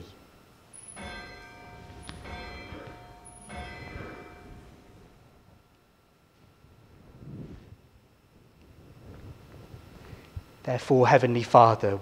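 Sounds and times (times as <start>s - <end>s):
bell ringing: 0.7s - 5.5s.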